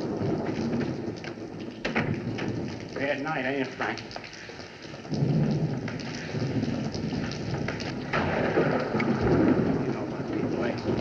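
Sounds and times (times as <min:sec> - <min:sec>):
steady rain: 0:00.0 - 0:11.0
thunder rumbling: 0:00.0 - 0:11.0.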